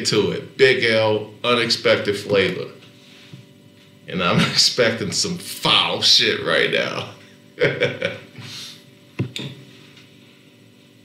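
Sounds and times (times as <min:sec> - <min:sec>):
faint electrical hum: 0:00.0 - 0:11.0
man laughing: 0:04.3 - 0:04.7, 0:07.6 - 0:08.6.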